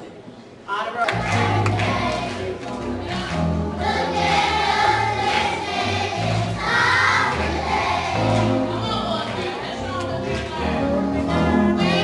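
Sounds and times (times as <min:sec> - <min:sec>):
steady bass accompaniment: 0:01.1 - 0:12.0
choir singing: 0:01.2 - 0:08.7, 0:10.8 - 0:12.0.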